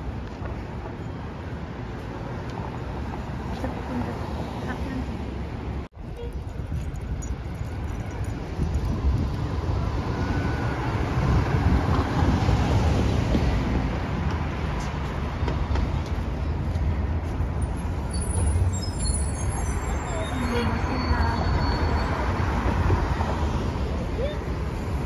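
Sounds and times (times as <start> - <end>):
city street traffic rumble: 0.0 - 25.0
bus driving past: 8.9 - 25.0.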